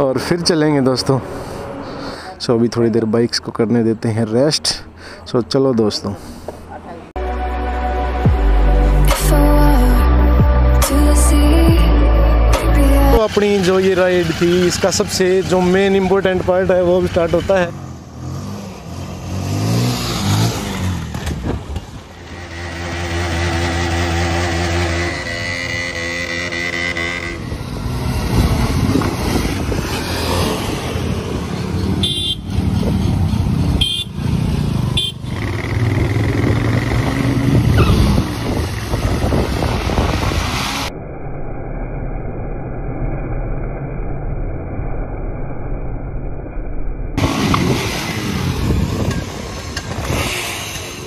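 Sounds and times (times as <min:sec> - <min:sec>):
motorcycle engines revving: 0:12.7 - 0:40.9, 0:47.2 - 0:51.0.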